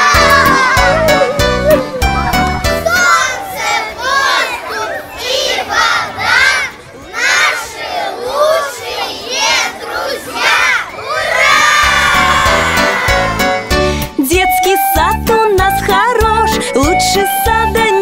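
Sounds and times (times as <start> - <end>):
young children shouting: 0.0 - 13.7
children cheering: 0.0 - 13.8.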